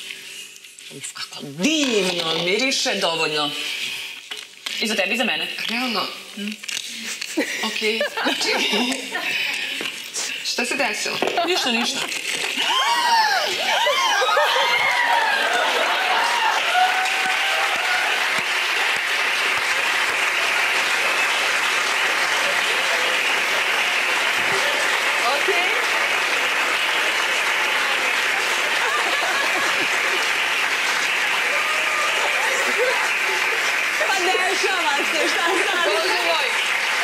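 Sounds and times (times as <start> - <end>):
audience applause: 7.8 - 37.0.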